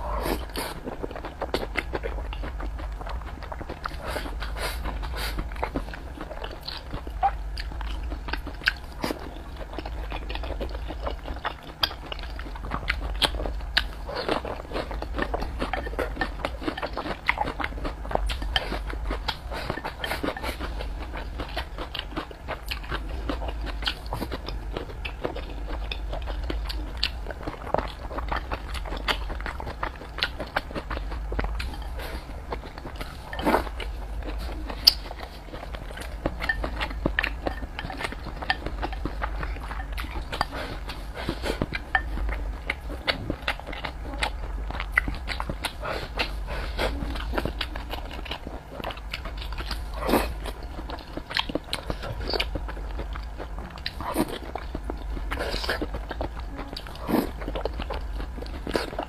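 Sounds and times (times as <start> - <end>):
person chewing food: 0.0 - 59.0.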